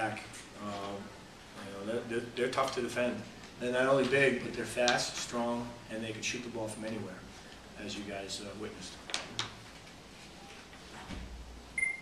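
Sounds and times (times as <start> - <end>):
steady electronic beep: 11.8 - 12.0.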